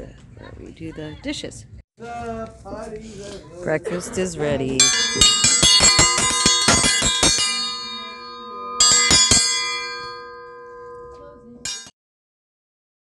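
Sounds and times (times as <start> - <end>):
triangle bell clanging: 4.8 - 11.9.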